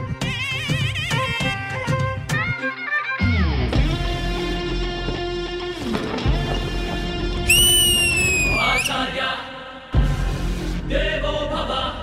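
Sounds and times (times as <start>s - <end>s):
high whistling note: 7.5s - 9.0s.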